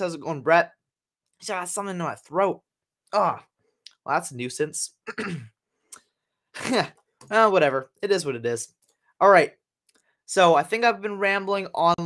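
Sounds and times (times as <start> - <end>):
man's voice: 10.3 - 12.0.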